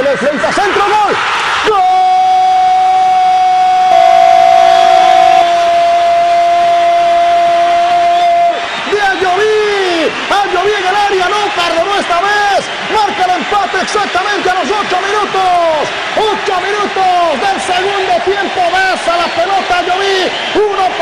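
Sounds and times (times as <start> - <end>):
rapid excited commentary: 0.0 - 2.8, 8.8 - 21.0
crowd noise: 0.0 - 21.0
commentator's long goal shout: 0.3 - 21.0.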